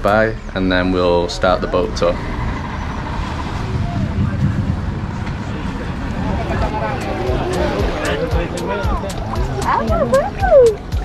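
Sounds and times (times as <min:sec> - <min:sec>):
faint voices: 0:00.0 - 0:11.0
wind buffeting microphone: 0:00.0 - 0:11.0.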